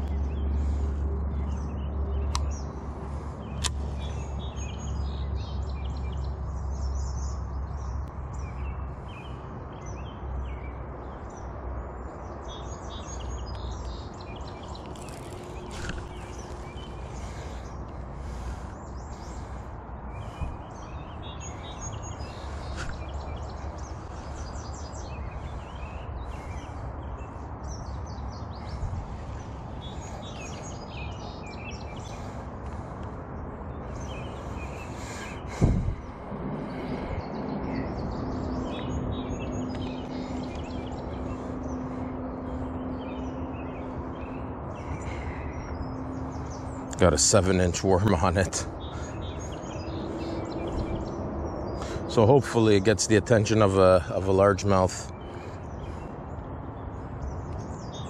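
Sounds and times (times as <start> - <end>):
songbirds chirping: 0.0 - 58.0
steady low rumble: 13.8 - 47.0.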